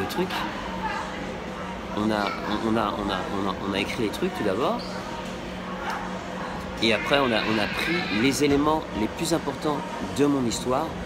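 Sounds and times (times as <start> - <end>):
man speaking: 6.8 - 9.6.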